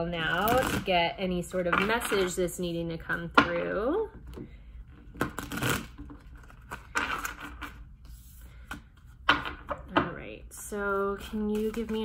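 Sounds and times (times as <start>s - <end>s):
cards being shuffled: 11.2s - 12.0s.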